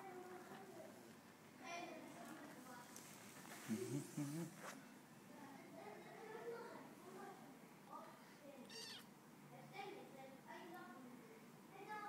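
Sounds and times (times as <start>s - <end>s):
kitten mewing: 8.6s - 9.1s.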